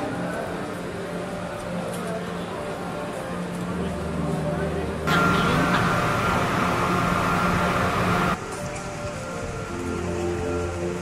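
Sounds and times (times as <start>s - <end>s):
high ventilation hum: 0.0s - 11.0s.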